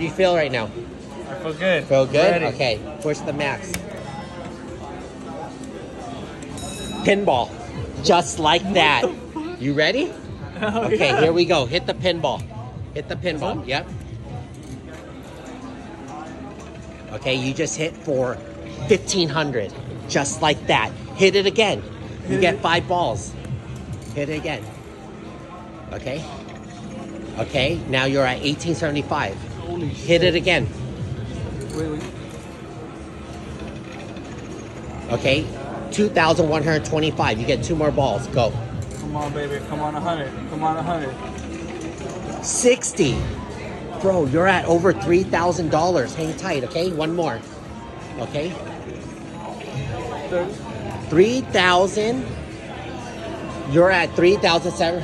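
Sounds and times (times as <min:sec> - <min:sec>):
casino floor background noise: 0:00.0 - 0:09.4, 0:13.4 - 0:55.0
murmur of voices: 0:00.0 - 0:55.0
music: 0:00.0 - 0:55.0.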